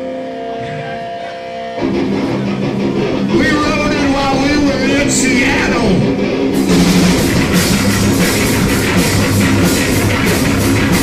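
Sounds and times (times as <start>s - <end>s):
rock band playing loud: 0.0s - 11.0s.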